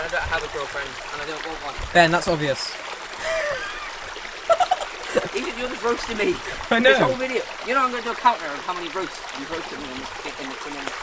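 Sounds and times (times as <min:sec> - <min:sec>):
woodland stream running: 0:00.0 - 0:11.0.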